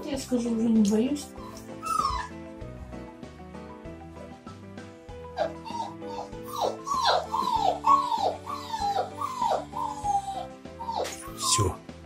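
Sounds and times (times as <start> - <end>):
background music: 0.0 - 12.0
puppy whimpering: 1.3 - 2.4, 5.3 - 11.8.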